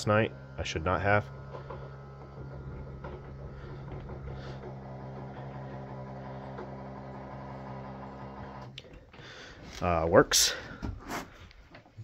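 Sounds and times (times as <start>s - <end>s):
electric pump motor humming: 0.0s - 11.9s.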